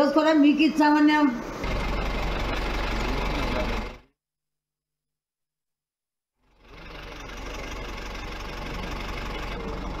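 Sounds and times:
vehicle engine running: 0:01.4 - 0:04.1, 0:06.4 - 0:10.0.

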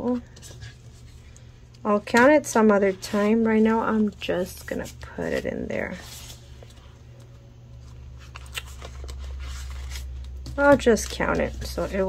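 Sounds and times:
steady low hum: 0:00.0 - 0:12.0
paper bills rustling and flicking: 0:08.0 - 0:12.0.

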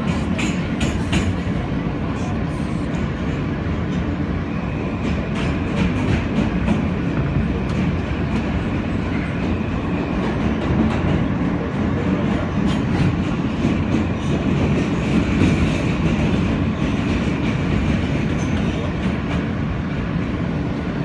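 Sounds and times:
rail joint clicks: 0:00.0 - 0:21.0
subway train wheels rumbling on rail: 0:00.0 - 0:21.0.

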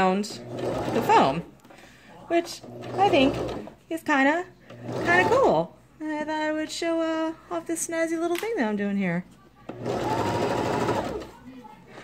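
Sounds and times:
sewing machine stitching: 0:00.0 - 0:01.5, 0:02.3 - 0:03.8, 0:04.6 - 0:05.7, 0:09.7 - 0:11.4.

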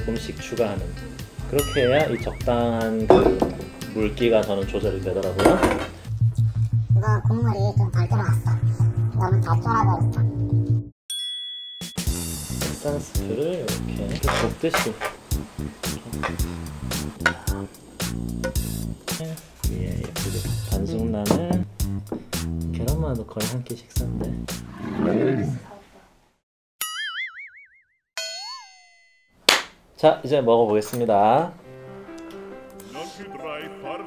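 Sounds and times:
background music: 0:00.0 - 0:10.9, 0:12.0 - 0:24.8, 0:31.1 - 0:34.0
bright bell-like chime: 0:01.6 - 0:02.5, 0:11.1 - 0:12.1
ringing tone swooping in pitch: 0:01.6 - 0:02.7, 0:26.8 - 0:29.3
wobbling boing tone: 0:01.6 - 0:03.6, 0:26.8 - 0:29.2.

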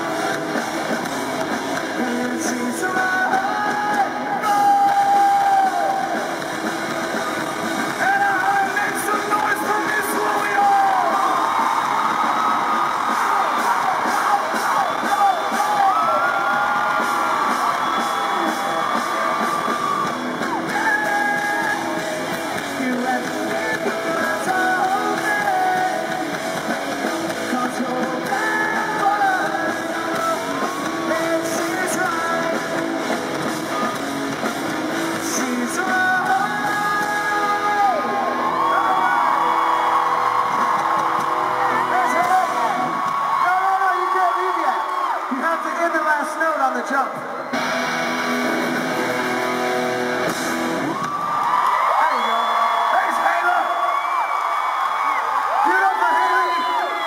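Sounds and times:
bass guitar: 0:00.0 - 0:43.2, 0:47.5 - 0:51.2
electric guitars: 0:00.0 - 0:43.5, 0:47.2 - 0:52.0
drums: 0:00.0 - 0:57.0
person singing: 0:01.9 - 0:06.2, 0:20.7 - 0:26.4, 0:27.4 - 0:32.9, 0:35.1 - 0:38.3.

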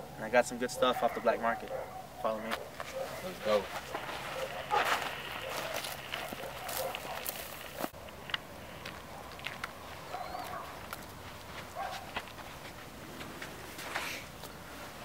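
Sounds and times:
faint animal calls: 0:00.0 - 0:07.5, 0:10.0 - 0:10.8
footsteps on pavement: 0:02.4 - 0:15.0.

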